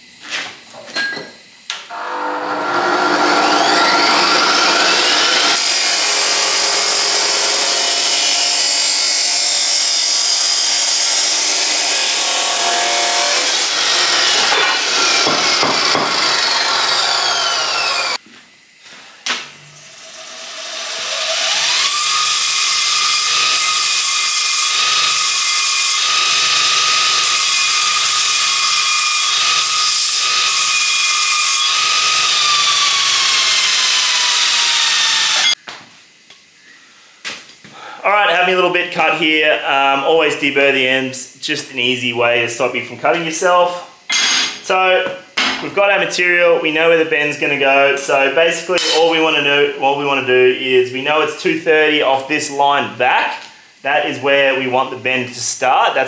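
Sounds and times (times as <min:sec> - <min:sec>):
bench grinder whine: 0:01.9 - 0:18.2, 0:19.8 - 0:35.6
chop saw cutting steel: 0:01.9 - 0:18.2, 0:19.8 - 0:35.6, 0:48.8 - 0:49.1.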